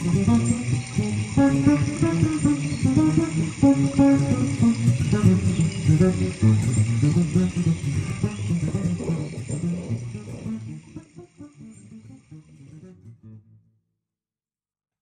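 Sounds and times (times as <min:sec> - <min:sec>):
acoustic guitar picking: 0:00.0 - 0:13.4
faint birdsong: 0:00.1 - 0:12.2.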